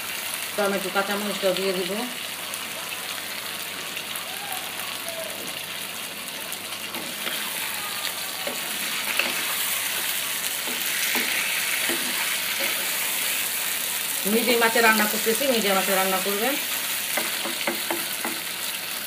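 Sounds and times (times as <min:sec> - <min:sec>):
curry sizzling in a frying pan: 0:00.0 - 0:19.0.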